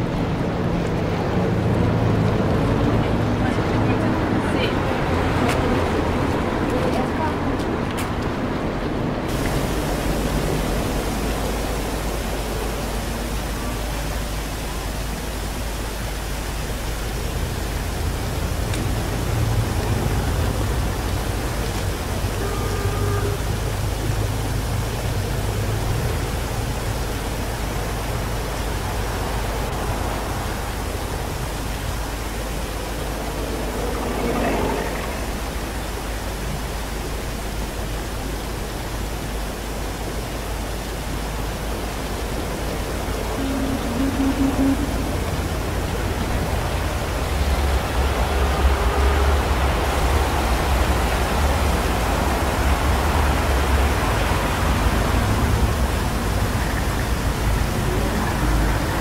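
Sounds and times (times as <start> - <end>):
fountain water splashing: 0.0 - 59.0.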